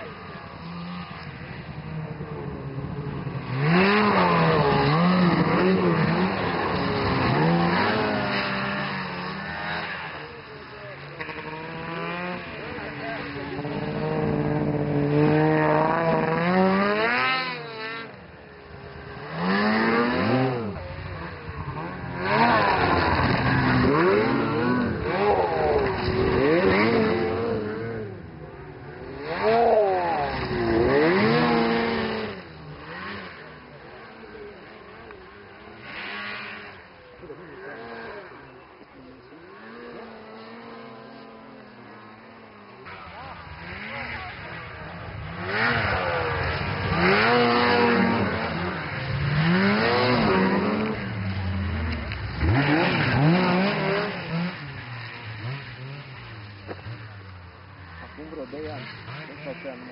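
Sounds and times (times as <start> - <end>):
snowmobile engines revving: 0.0 - 59.9.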